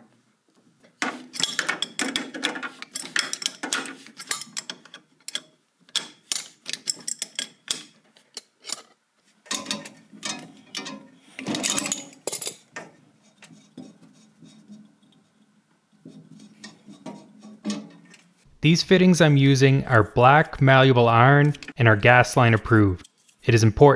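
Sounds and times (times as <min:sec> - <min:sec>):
metal parts rubbing and clanking: 0:01.0 - 0:15.4, 0:16.0 - 0:18.5, 0:22.7 - 0:23.5.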